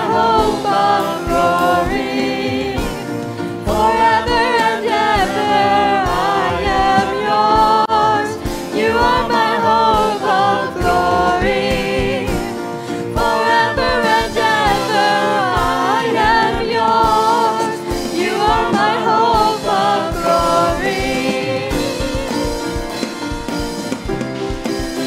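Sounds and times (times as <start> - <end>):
voices singing in harmony: 0.0 - 23.3
drum kit: 0.0 - 25.0
guitars: 0.0 - 25.0.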